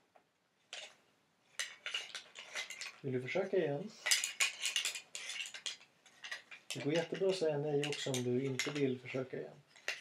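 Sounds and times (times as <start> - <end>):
handling clinks and rustles: 0.7 - 3.1, 4.0 - 10.0.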